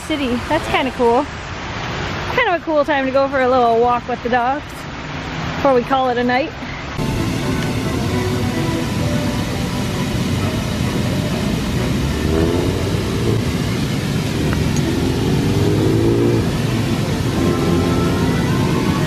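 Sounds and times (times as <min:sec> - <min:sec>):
fountain water rushing: 0:00.0 - 0:19.0
traffic passing: 0:00.0 - 0:19.0
engines rising in pitch: 0:07.0 - 0:19.0.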